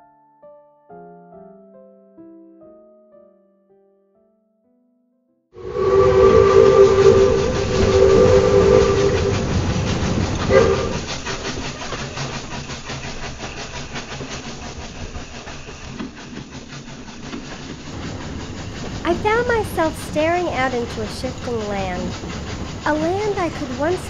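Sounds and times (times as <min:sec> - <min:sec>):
steam locomotive whistle: 0:05.6 - 0:11.1, 0:17.9 - 0:24.0
train chuffing: 0:05.6 - 0:24.0
train wheel clatter: 0:05.6 - 0:24.0.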